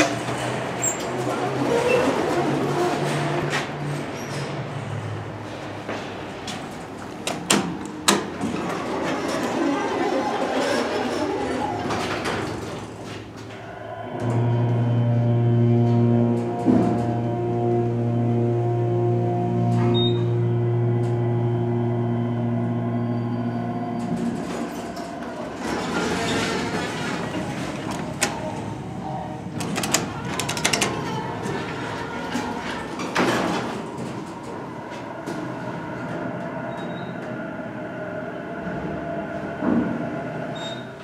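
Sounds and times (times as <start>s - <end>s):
elevator doors sliding open: 0.0s - 41.0s
elevator pump motor humming: 13.8s - 26.3s
sharp clicks and knocks: 29.6s - 31.0s.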